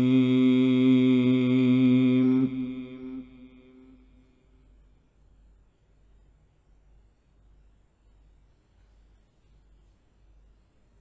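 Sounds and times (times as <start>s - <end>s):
reverberant held chanting note: 0.0s - 4.6s.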